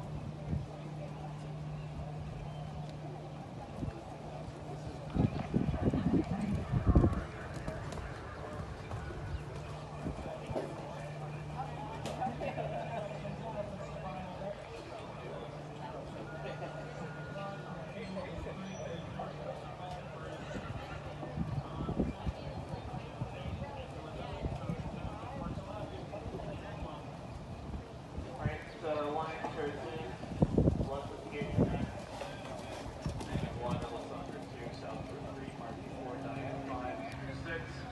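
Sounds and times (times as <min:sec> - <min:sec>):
steady low hum: 0:00.0 - 0:37.9.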